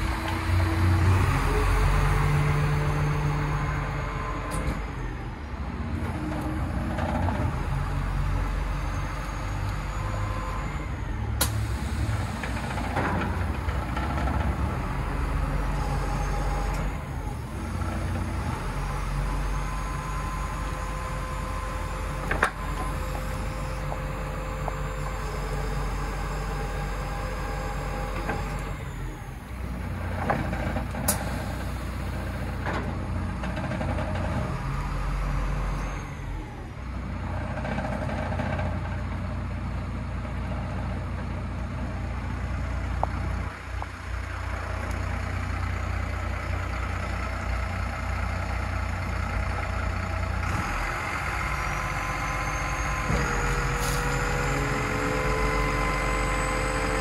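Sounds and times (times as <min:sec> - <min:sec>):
diesel truck engine running: 0:00.0 - 0:57.0.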